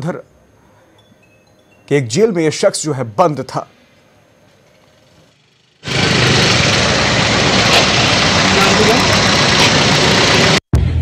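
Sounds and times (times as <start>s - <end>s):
vehicle engines running: 5.5s - 10.6s.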